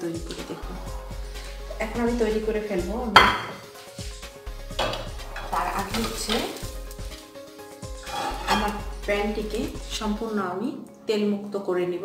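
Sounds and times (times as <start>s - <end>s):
kitchenware knock with ringing tail: 3.2s - 3.6s.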